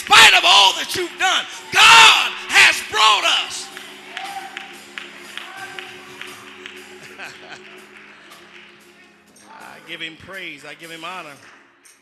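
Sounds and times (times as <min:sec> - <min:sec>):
hand claps: 0:03.7 - 0:09.1, 0:10.9 - 0:12.0.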